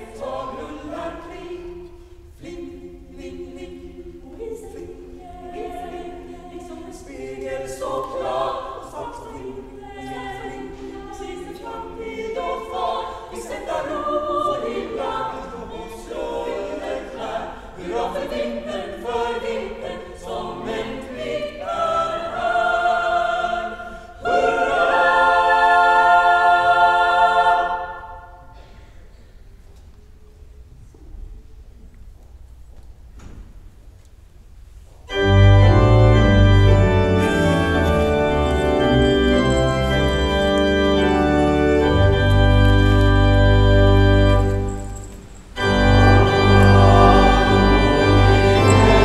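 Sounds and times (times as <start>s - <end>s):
girls' choir singing unaccompanied: 0.0s - 28.7s, 45.5s - 49.0s.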